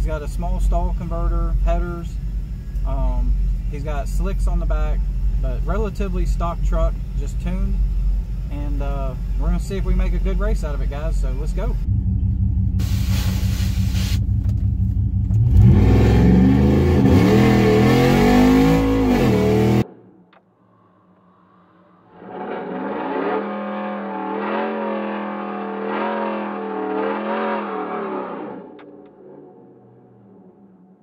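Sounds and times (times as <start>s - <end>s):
truck engine rumbling and revving: 0.0s - 31.0s.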